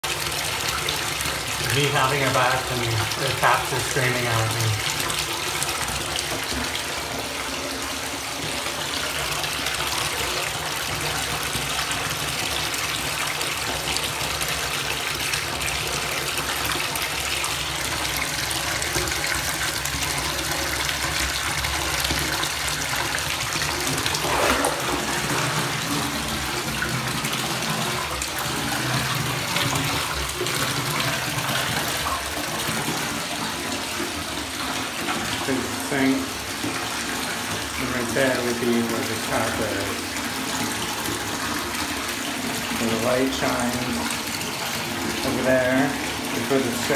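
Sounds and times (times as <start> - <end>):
bathtub tap running: 0.0 - 46.9.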